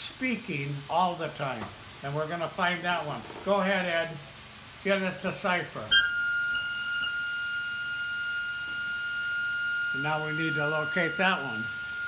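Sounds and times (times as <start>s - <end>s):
organ pipe high steady note: 5.8s - 12.0s.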